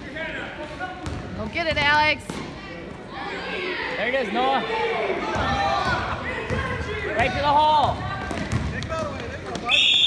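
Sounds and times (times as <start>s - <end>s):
basketball bouncing on hardwood: 7.8s - 9.6s.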